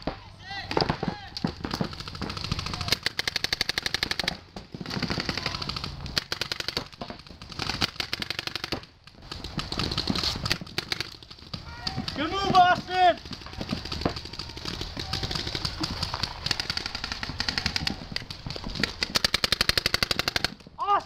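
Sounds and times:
paintball markers rapid firing: 0.8s - 20.7s.

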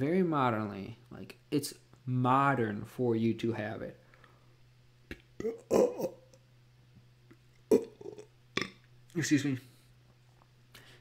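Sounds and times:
mouth sounds: 5.1s - 6.4s, 7.3s - 8.9s
man burping: 5.4s - 6.4s, 7.7s - 8.9s.

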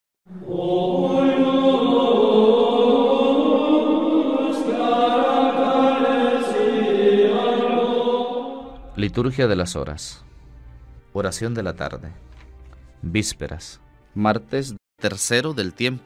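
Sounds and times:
voices singing chant: 0.3s - 9.2s.

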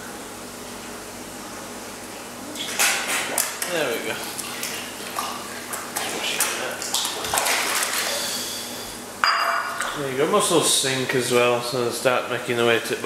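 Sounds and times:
fish splashing at water surface: 2.6s - 9.0s.

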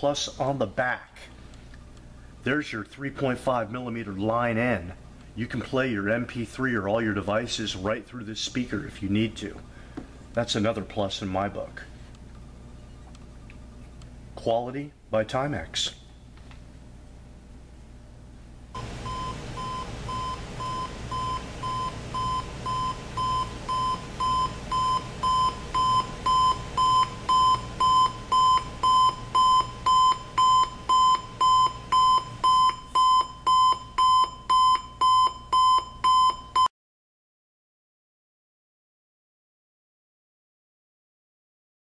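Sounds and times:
alarm clock buzzer beeping: 18.8s - 36.7s.

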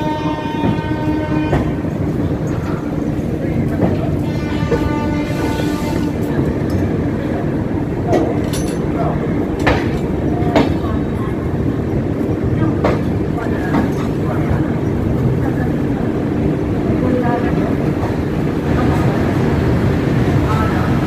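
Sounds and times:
train wheels rumbling on rail: 0.0s - 21.0s.

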